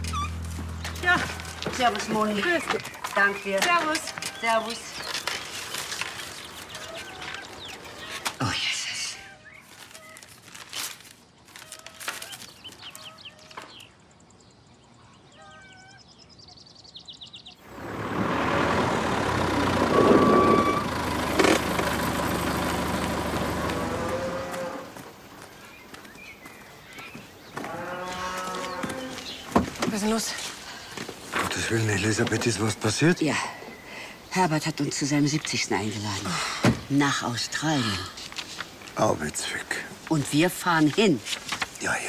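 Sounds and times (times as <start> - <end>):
tractor engine running: 0.0 - 4.2, 17.6 - 25.1
paper rustling: 0.0 - 8.5, 9.5 - 13.8, 38.2 - 42.0.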